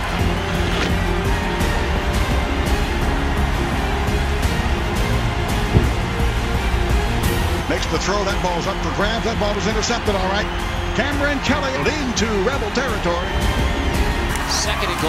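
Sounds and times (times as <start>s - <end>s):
music playing: 0.0s - 15.0s
stadium crowd noise: 0.0s - 15.0s.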